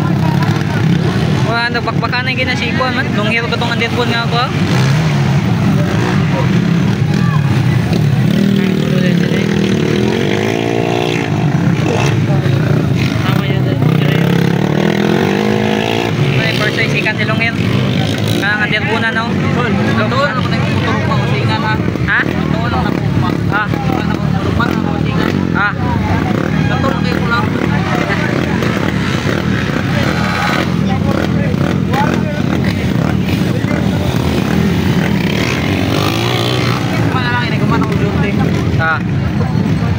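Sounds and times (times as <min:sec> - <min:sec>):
crowd voices: 0:00.0 - 0:39.9
motorcycle engines revving: 0:00.0 - 0:39.9.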